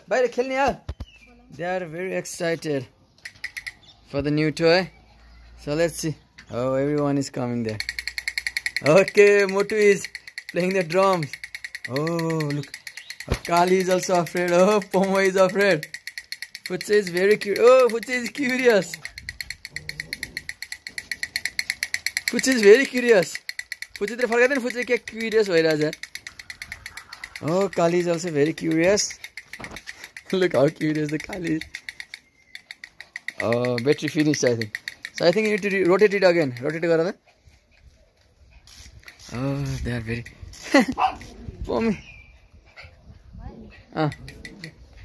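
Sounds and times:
toy drum tapping rapid clicks: 3.2 - 3.8, 6.8 - 37.2, 44.0 - 44.9.

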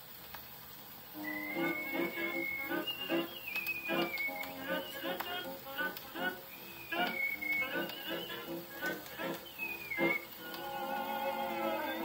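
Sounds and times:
record surface hiss: 0.0 - 12.0
dance-band music on phonograph: 1.1 - 12.0.

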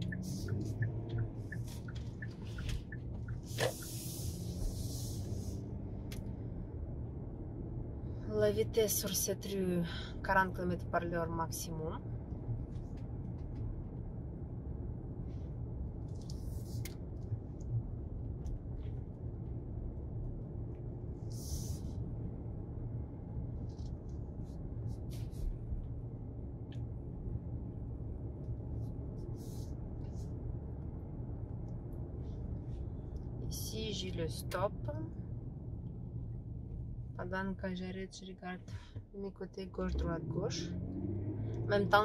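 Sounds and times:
car engine and tyres rumbling: 0.0 - 42.0.

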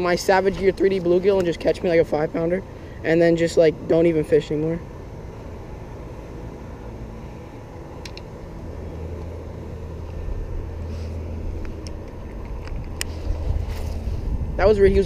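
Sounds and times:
low motor hum: 0.0 - 15.0.

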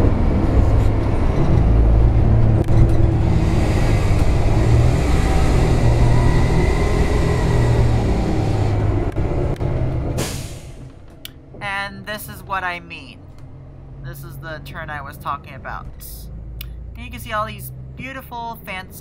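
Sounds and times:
bus engine and road rumble: 0.0 - 19.0.

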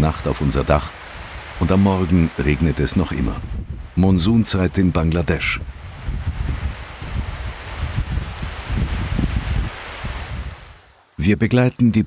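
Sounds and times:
wind buffeting microphone: 0.0 - 10.9
heavy rain hissing: 0.0 - 12.0.

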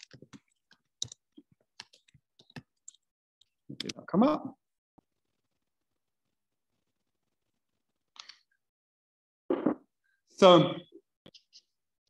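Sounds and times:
computer keyboard typing: 0.0 - 3.1.

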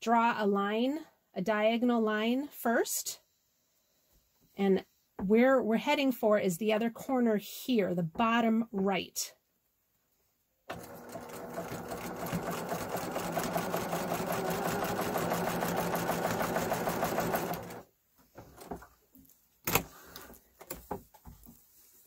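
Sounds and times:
sewing machine stitching: 10.7 - 17.9.

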